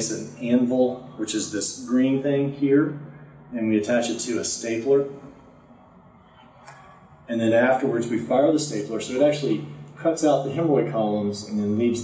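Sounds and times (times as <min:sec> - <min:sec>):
man lecturing: 0:00.0 - 0:05.3, 0:07.3 - 0:12.0.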